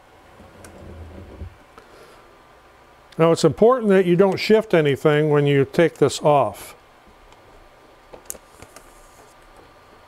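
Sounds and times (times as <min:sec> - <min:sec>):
heat press low rumble: 0:00.0 - 0:01.8.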